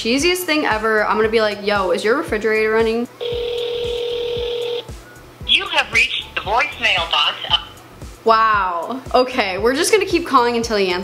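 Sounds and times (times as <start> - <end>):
automated voicemail greeting: 3.2 - 4.9, 5.5 - 7.7
phone ringback tone: 3.2 - 4.9.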